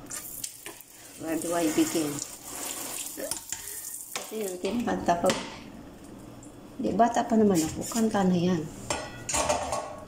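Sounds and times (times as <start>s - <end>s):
water running from a tap: 0.1s - 4.8s.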